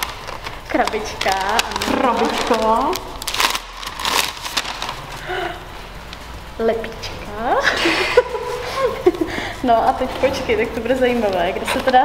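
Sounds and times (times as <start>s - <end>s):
wrapping paper crinkling and tearing: 0.0s - 6.4s, 9.9s - 12.0s.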